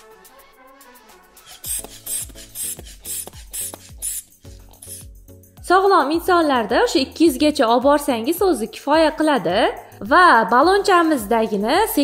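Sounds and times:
inflation bulb being squeezed: 1.4 - 5.2.

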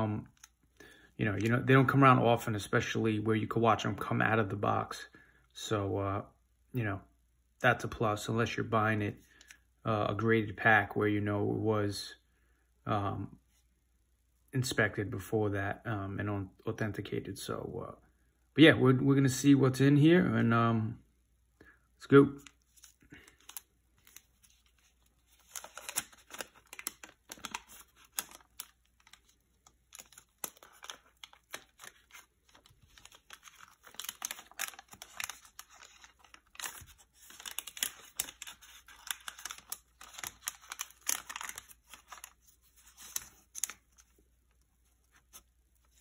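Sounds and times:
wax paper wrapper crinkling and tearing: 22.4 - 46.0.

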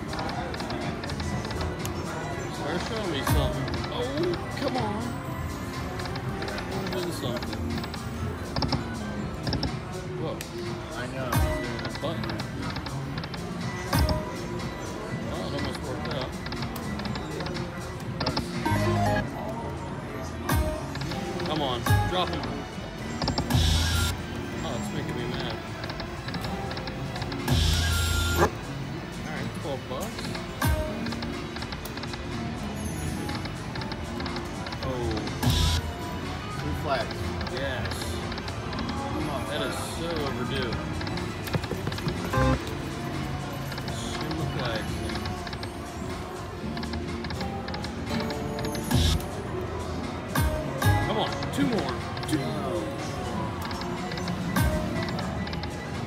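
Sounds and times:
murmur of voices: 0.0 - 27.7, 28.4 - 56.0
casino music: 0.0 - 56.0
casino voices: 18.2 - 19.4, 36.6 - 49.4
slot machine reel tones: 18.4 - 19.3, 36.8 - 49.5.

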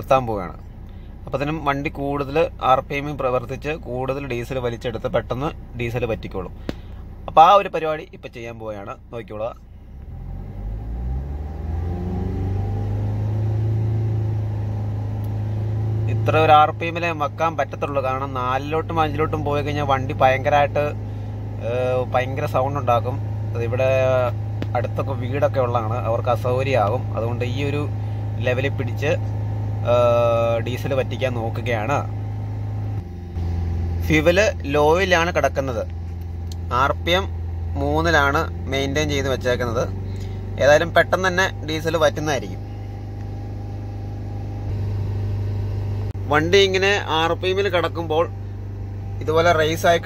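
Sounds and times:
diesel engine revving: 0.0 - 50.0.

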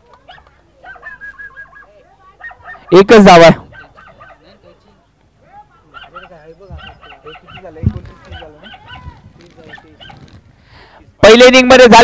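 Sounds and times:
quiet background voices: 3.6 - 11.2
man shouting into microphone: 11.2 - 12.0.

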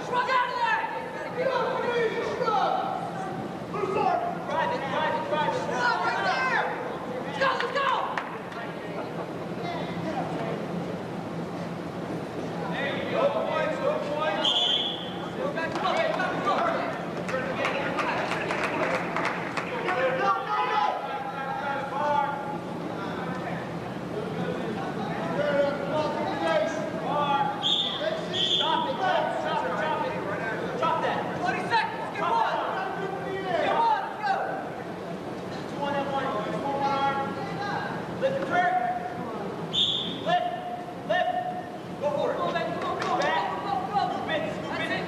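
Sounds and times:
people calling out in a gym: 0.0 - 10.4, 12.7 - 17.2, 20.1 - 45.0.

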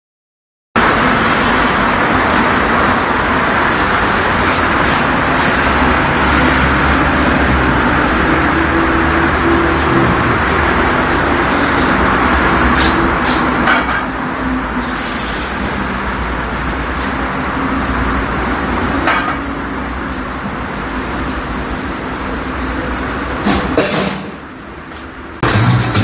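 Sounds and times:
loud steady background noise: 0.8 - 26.0.

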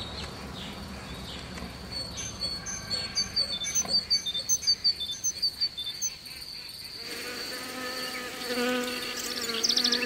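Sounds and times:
small bird chirping: 0.0 - 7.1, 8.0 - 10.0
high-pitched insect trill: 5.2 - 10.0.

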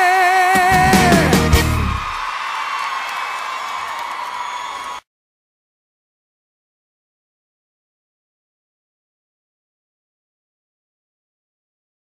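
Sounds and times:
band final chord with drums: 0.6 - 2.1
audience cheering and whooping: 0.7 - 5.0.

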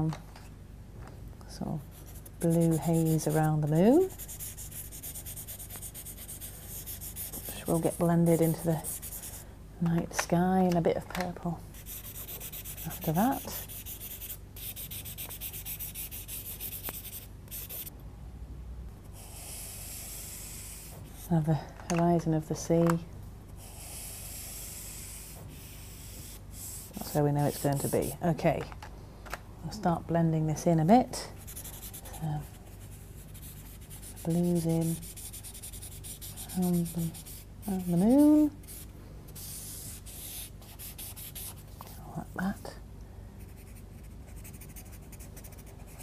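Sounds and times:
pastel pencil scratching on paper: 1.8 - 9.4, 11.8 - 17.9, 19.2 - 21.3, 23.6 - 28.2, 31.4 - 38.8, 39.4 - 41.9, 43.5 - 46.0.

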